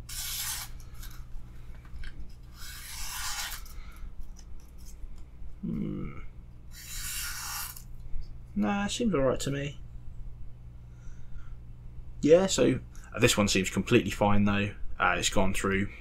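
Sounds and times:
knife blade slicing paper: 0:00.0 - 0:01.2, 0:02.5 - 0:03.8, 0:06.8 - 0:07.9.

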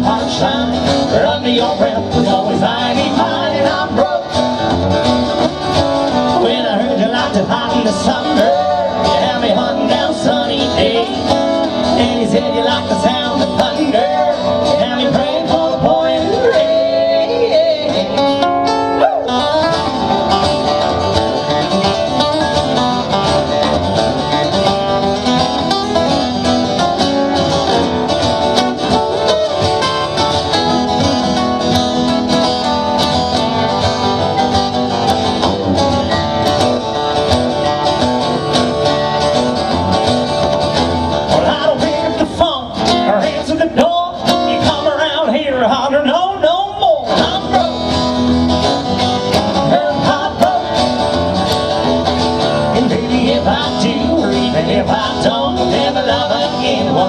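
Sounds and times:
acoustic guitars playing country: 0:00.0 - 0:57.0
bending gliding guitar melody: 0:00.0 - 0:57.0.

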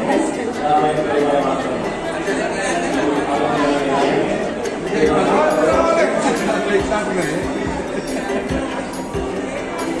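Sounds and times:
crowd talking in a hall: 0:00.0 - 0:10.0.

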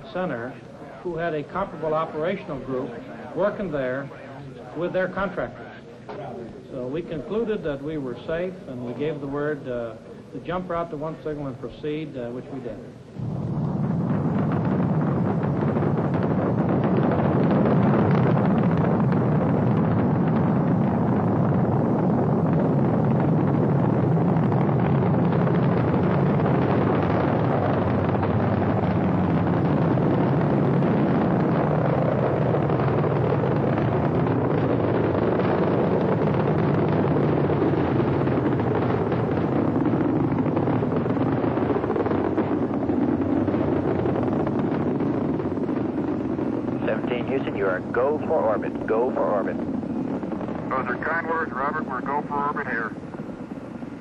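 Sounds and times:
rocket engines rumbling: 0:00.0 - 0:54.0.

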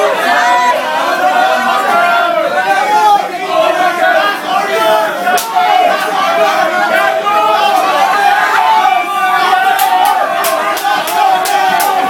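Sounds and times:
crowd singing along: 0:00.0 - 0:12.0
sharp clapping: 0:09.8 - 0:12.0.

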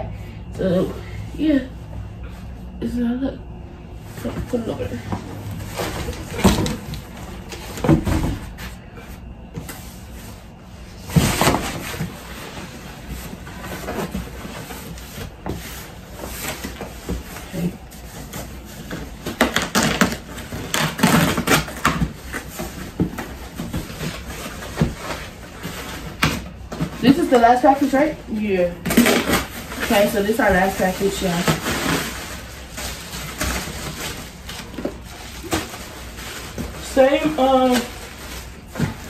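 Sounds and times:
cardboard boxes scraping and rustling: 0:04.1 - 0:39.0.

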